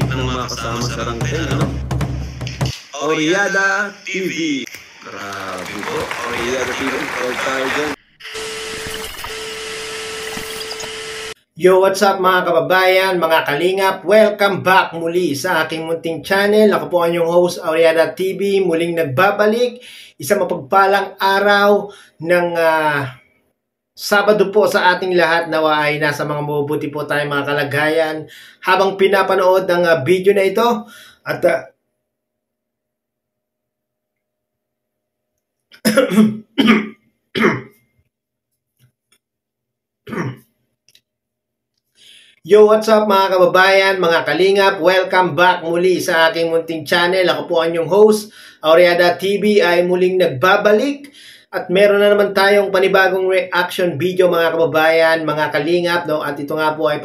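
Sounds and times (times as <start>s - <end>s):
tape static hiss: 2.4s - 8.0s
man coughing: 35.8s - 37.8s, 40.1s - 40.5s.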